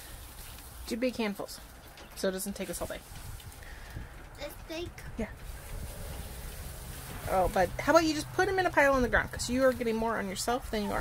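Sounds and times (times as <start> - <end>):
wood shavings rustling: 0.0 - 4.6, 5.3 - 11.0.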